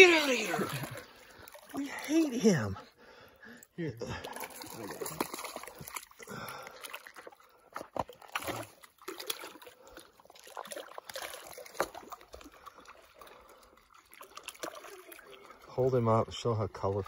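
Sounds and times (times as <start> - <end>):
small splashes: 0.0 - 2.6, 4.0 - 16.1
water lapping among rocks: 0.0 - 2.7, 4.1 - 16.2.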